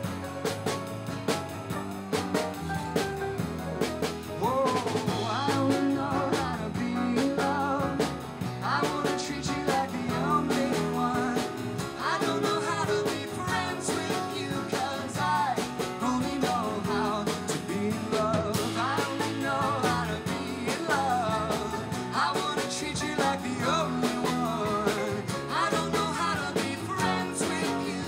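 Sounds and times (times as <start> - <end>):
acoustic guitar: 0.0 - 28.0
drums: 0.0 - 28.0
electric bass: 0.0 - 28.0
piano: 0.0 - 28.0
person singing with vibrato: 4.4 - 28.0.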